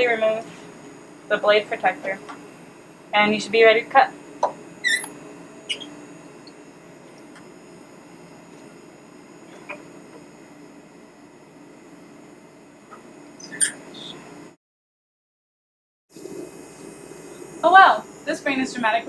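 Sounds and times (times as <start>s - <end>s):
machine hum: 0.0s - 14.6s, 16.1s - 19.0s
high squeaks: 4.8s - 6.0s, 13.4s - 14.2s.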